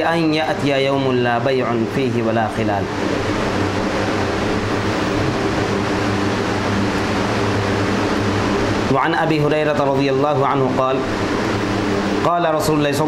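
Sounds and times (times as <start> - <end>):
constant low hum: 0.0 - 13.0.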